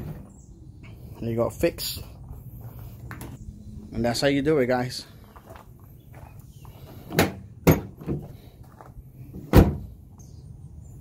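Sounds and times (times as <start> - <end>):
tailgate handle and latch clunks: 7.1 - 8.3, 9.4 - 9.8.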